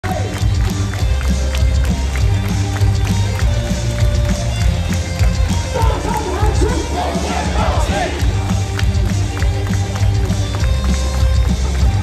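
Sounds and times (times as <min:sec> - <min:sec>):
cheer music over a sound system: 0:00.0 - 0:12.0.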